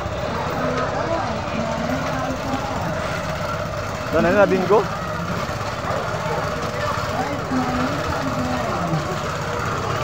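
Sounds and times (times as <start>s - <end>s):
engine running with pulsing rumble: 0.0s - 10.0s
indistinct voices: 0.0s - 10.0s.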